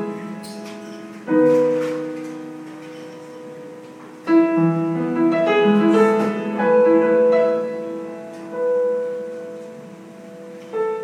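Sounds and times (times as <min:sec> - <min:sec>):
solo piano chords: 0:00.0 - 0:11.0.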